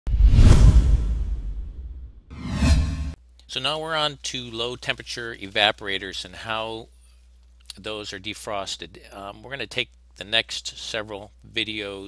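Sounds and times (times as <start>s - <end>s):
whoosh with deep low boom: 0.1s - 3.2s.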